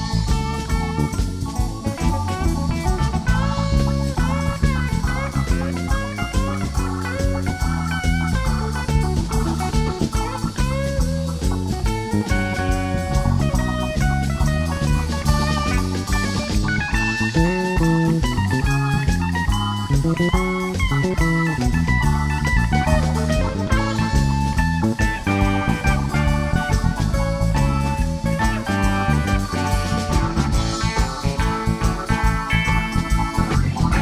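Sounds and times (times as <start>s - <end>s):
bass guitar: 0.0s - 34.0s
drum kit: 0.0s - 34.0s
electric guitar lead: 0.0s - 34.0s.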